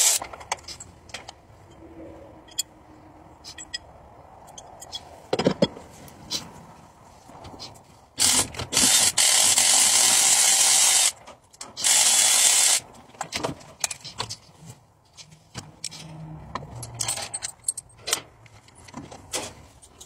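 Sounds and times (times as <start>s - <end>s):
hand tools clicking and clinking: 0.0s - 1.4s, 3.4s - 5.8s, 15.2s - 20.0s.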